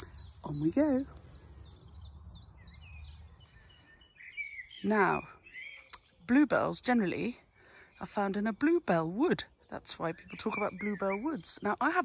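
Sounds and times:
birds singing: 0.0s - 12.0s.

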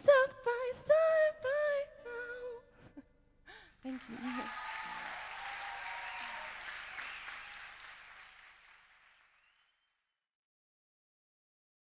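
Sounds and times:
audience applauding: 3.9s - 9.9s.

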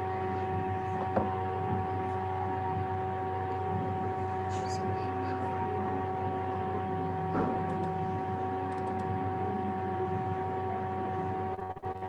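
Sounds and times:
steady tonal hum: 0.0s - 12.0s.

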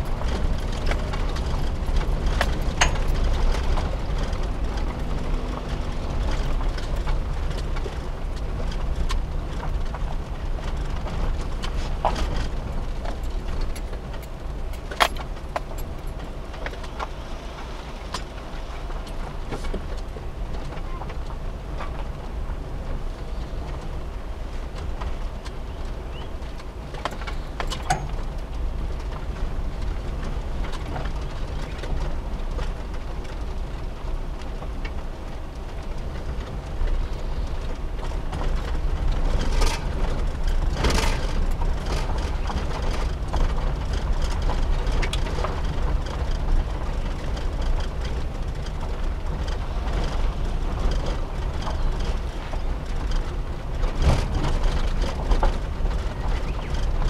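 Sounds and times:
van engine rumbling: 0.0s - 57.0s.

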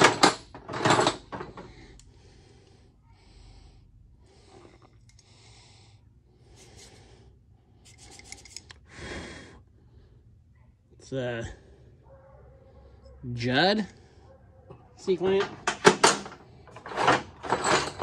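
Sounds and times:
metal hardware clattering: 0.0s - 1.8s, 15.0s - 18.0s
scraping and rustling of metal parts: 0.0s - 1.9s, 15.0s - 18.0s.

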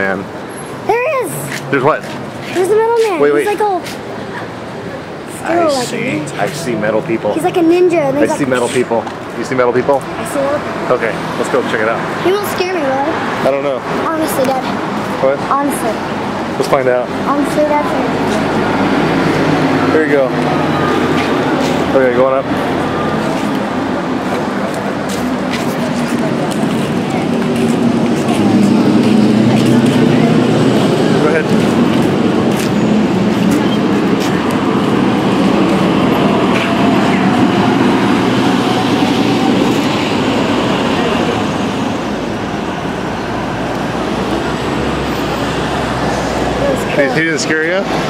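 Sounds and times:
traffic with vehicles passing: 0.0s - 48.0s
voices of passers-by: 0.0s - 48.0s.

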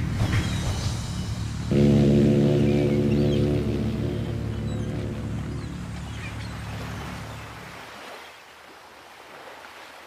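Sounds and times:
ship's horn blast: 1.6s - 6.1s.

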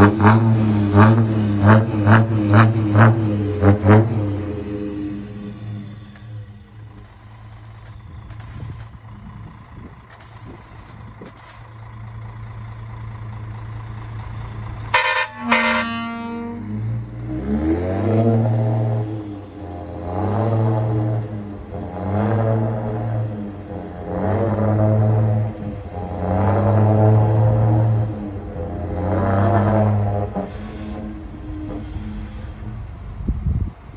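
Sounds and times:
truck engine running: 0.0s - 25.6s, 29.7s - 33.9s
deep exhaust whistle notes: 4.0s - 8.1s, 14.9s - 17.0s.

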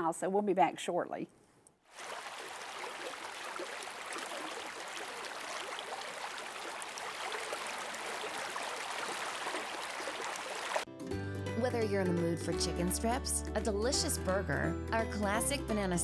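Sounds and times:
creek rushing over rocks: 1.9s - 10.9s.

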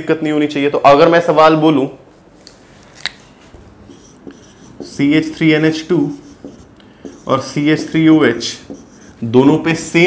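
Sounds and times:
marker writing on whiteboard: 3.8s - 10.0s.

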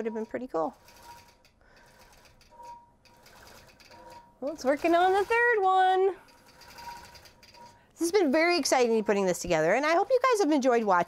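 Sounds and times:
quilting machine stitching: 3.1s - 7.6s.

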